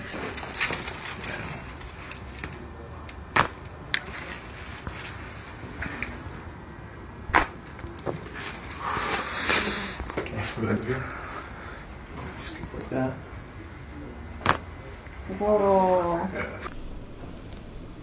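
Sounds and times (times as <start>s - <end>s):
rustling: 0.0s - 6.5s, 7.3s - 10.8s
noisy rush: 16.6s - 18.0s.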